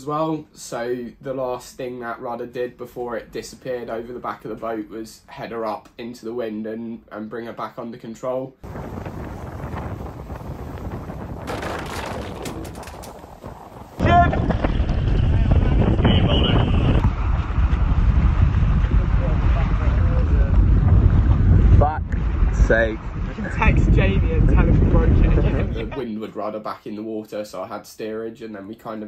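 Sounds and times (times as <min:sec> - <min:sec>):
water rushing along hulls: 0:08.6 - 0:25.8
wind buffeting microphone: 0:08.6 - 0:26.0.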